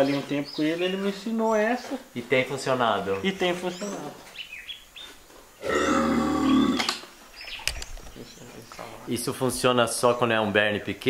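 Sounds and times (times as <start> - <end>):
farm animal call: 5.6 - 7.0.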